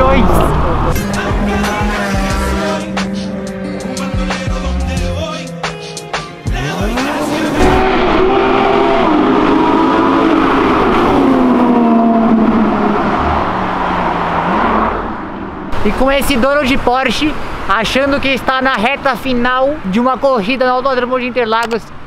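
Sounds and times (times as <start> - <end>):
sports car accelerating hard: 0.0 - 15.8.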